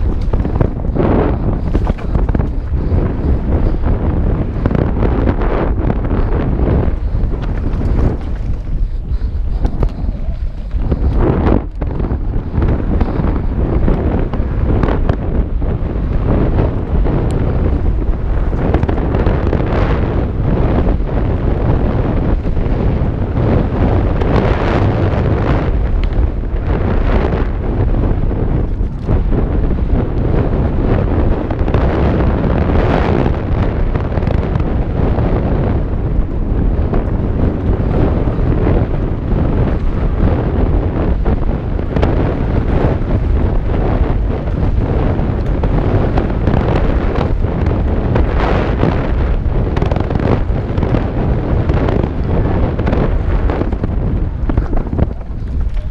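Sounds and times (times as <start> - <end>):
bike rattling over rough dirt: 0.0 - 55.9
wind buffeting microphone: 0.0 - 55.9.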